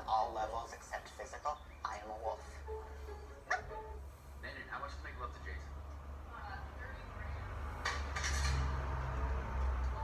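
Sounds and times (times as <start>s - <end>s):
faint voices from tablet speaker: 0.0s - 7.8s.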